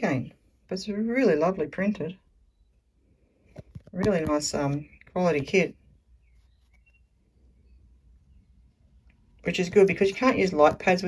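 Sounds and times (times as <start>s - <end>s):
faint high chirps: 2.4s - 3.1s, 6.1s - 9.0s.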